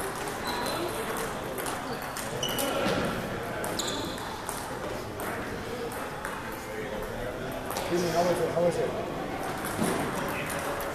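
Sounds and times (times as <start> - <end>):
table tennis balls clicking: 0.0 - 2.7, 3.6 - 6.6, 9.4 - 10.9.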